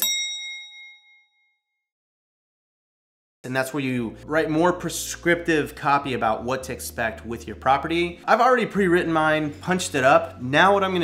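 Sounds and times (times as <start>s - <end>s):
bell-like ding: 0.0s - 1.6s.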